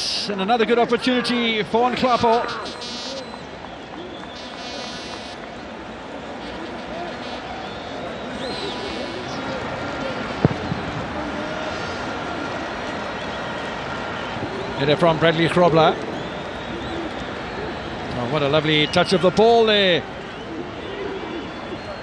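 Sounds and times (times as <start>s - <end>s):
distant shouts from players: 0.8s - 15.4s.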